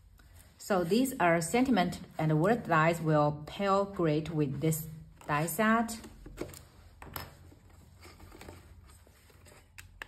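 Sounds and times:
soft rustling of cardstock: 0:05.2 - 0:10.0.

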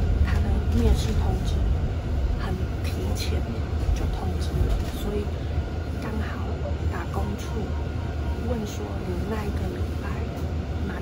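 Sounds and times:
bus engine and road rumble: 0:00.0 - 0:11.0
woman talking: 0:00.2 - 0:11.0.

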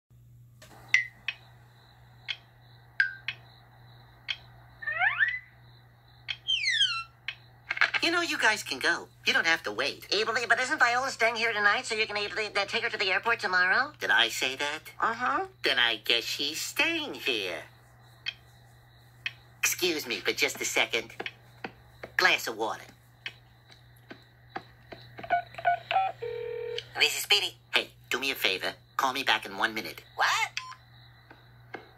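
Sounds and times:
steady low hum: 0:00.2 - 0:04.8, 0:05.5 - 0:30.2
faint taps: 0:21.2 - 0:22.2
phone keypad beeps: 0:25.3 - 0:26.8.

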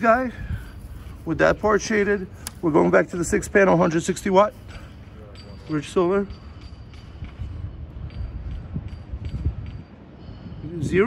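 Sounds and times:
wind buffeting microphone: 0:00.0 - 0:11.0
light ticks: 0:02.4 - 0:02.6.

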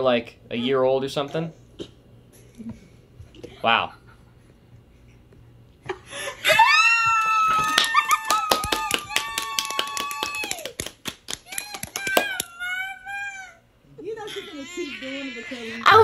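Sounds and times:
rapid hand clapping: 0:07.2 - 0:12.6.

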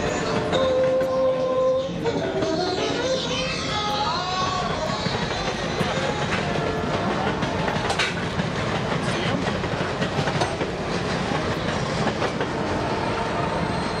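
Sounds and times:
rail joint clicks: 0:00.0 - 0:14.0
train wheels rumbling on rail: 0:00.0 - 0:14.0.

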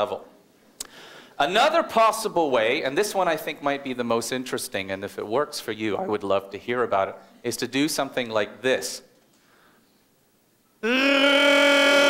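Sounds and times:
long howling call: 0:10.8 - 0:12.0.

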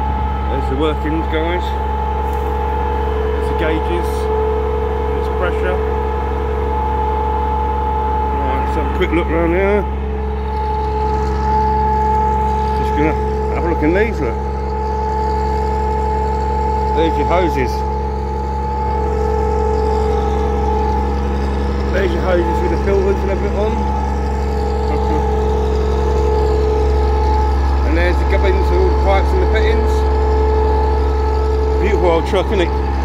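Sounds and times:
engine droning: 0:00.0 - 0:33.0
high-pitched pump whine: 0:00.0 - 0:33.0.

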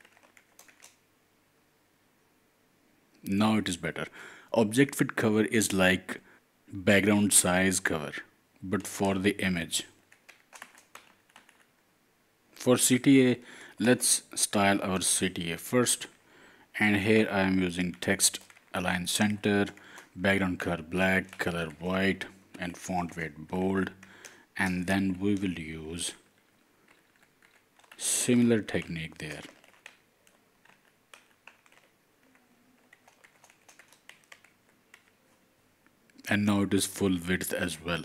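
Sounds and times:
computer keyboard typing: 0:00.0 - 0:01.0, 0:10.1 - 0:11.7, 0:18.1 - 0:20.1, 0:21.1 - 0:22.3, 0:26.9 - 0:35.2
man speaking: 0:03.2 - 0:10.0, 0:12.6 - 0:16.2, 0:16.8 - 0:24.0, 0:24.6 - 0:26.2, 0:28.0 - 0:29.6, 0:36.2 - 0:38.0.

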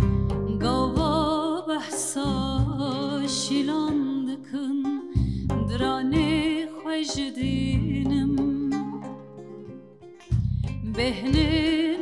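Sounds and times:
deep bass notes: 0:00.0 - 0:01.3, 0:05.2 - 0:06.5, 0:10.2 - 0:11.7
plucked long-necked lute: 0:00.0 - 0:12.0
woman singing slow melody: 0:00.3 - 0:09.2, 0:10.8 - 0:12.0.

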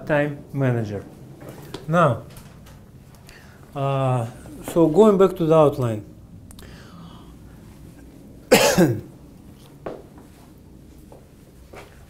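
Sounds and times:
man coughing: 0:08.5 - 0:09.1.

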